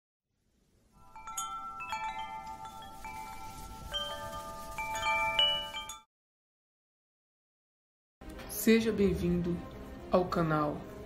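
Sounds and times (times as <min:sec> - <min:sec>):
cascade of chimes: 0:00.9 - 0:06.1.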